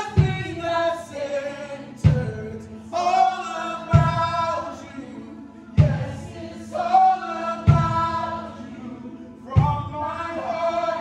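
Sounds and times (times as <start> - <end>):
voices singing held notes: 0.0 - 11.0.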